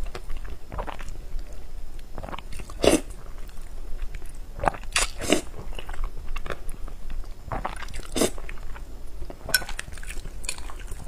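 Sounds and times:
person slurping noodles: 2.2 - 3.1, 4.7 - 5.5, 7.6 - 8.4.

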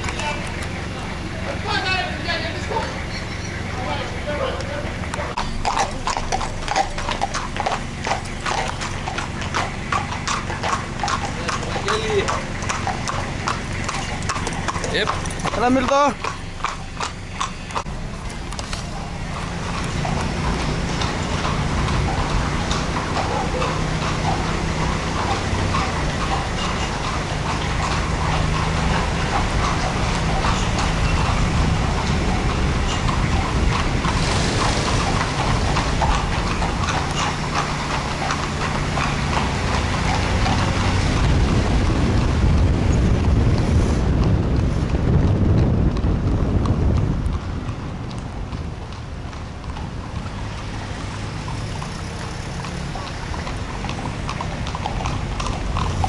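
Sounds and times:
vehicle engine running: 0.0 - 45.5
hooves clip-clopping on pavement: 0.0 - 56.0.

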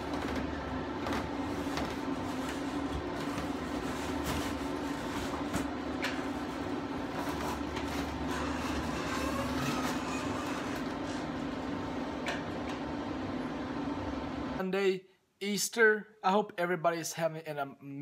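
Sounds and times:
tanning bed fans humming: 0.0 - 15.0.

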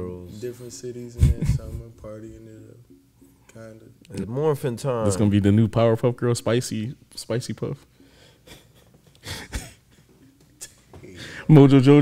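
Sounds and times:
quiet room noise: 0.0 - 12.0
person huffing breath: 8.0 - 10.1.

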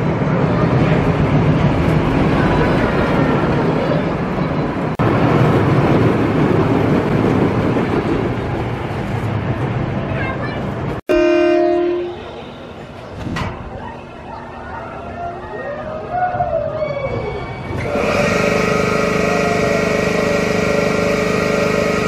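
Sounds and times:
roller coaster train rumbling: 0.0 - 22.0
horn-like tone: 11.1 - 12.7, 17.8 - 22.0.

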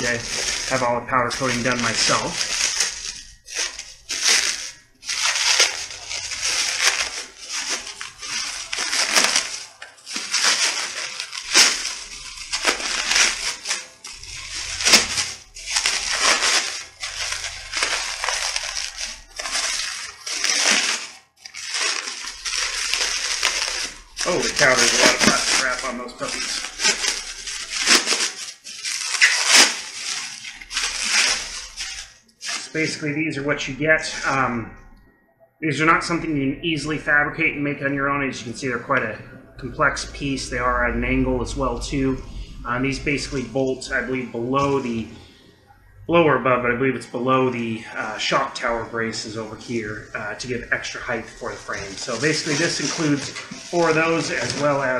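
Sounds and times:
plastic wrapping rustling: 0.0 - 34.7, 39.8 - 54.9.

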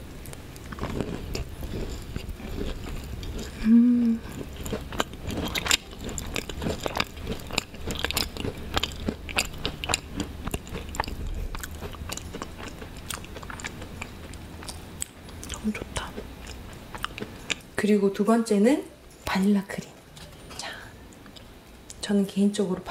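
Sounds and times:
steady low rumble: 0.0 - 17.8
wet chewing mouth clicks: 4.2 - 17.7.

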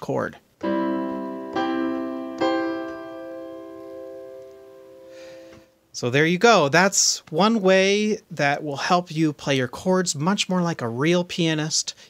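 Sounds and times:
piano chords: 0.6 - 5.6.

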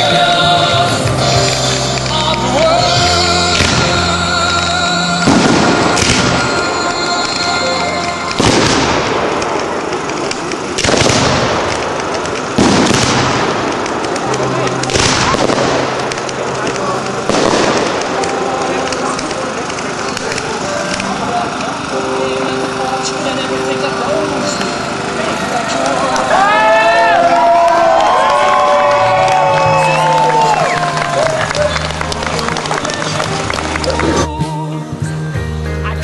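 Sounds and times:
fireworks bangs with echo: 3.3 - 21.9.

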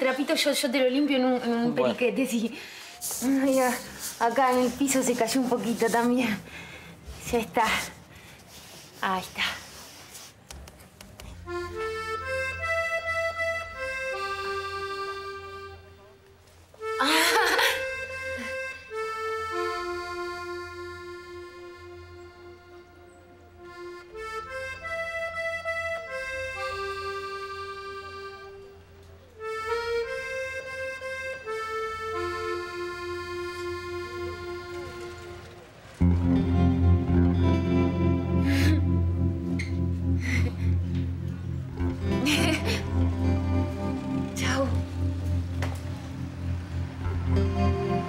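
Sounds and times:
accordion music: 0.0 - 48.0.

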